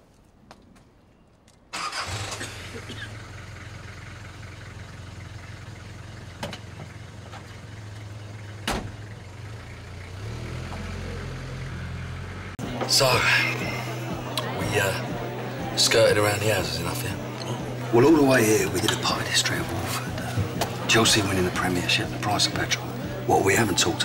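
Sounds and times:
car engine starting and running: 1.8s - 24.0s.

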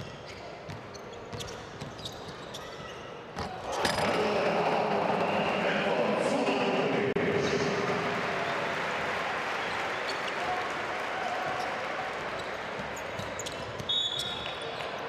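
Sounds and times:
sneaker squeaks: 0.0s - 4.1s, 11.5s - 15.0s
crowd noise: 2.5s - 15.0s.

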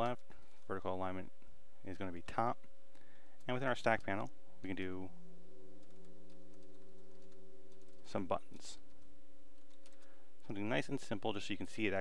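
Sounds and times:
steady low hum: 0.0s - 12.0s
keyboard typing: 3.4s - 4.8s, 5.7s - 10.1s.

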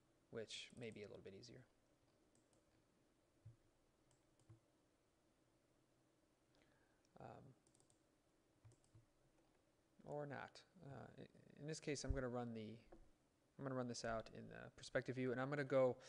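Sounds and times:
faint computer mouse clicks: 4.1s - 4.6s, 7.0s - 8.0s, 8.6s - 9.1s.

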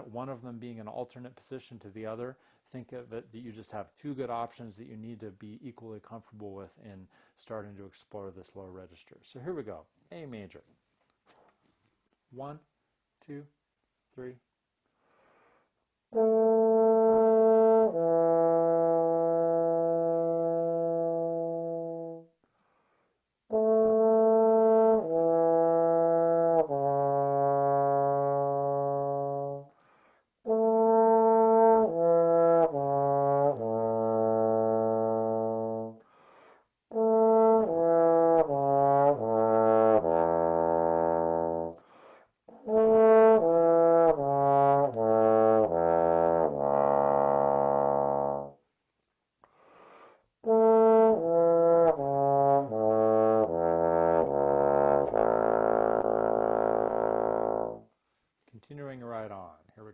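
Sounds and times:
bass trombone playing slow phrases: 16.1s - 22.3s, 23.5s - 29.8s, 30.5s - 36.0s, 36.9s - 41.8s, 42.5s - 48.6s, 50.4s - 57.9s.

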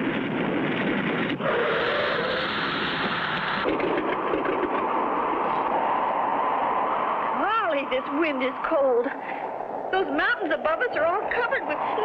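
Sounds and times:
propeller plane engine droning: 0.0s - 12.0s.

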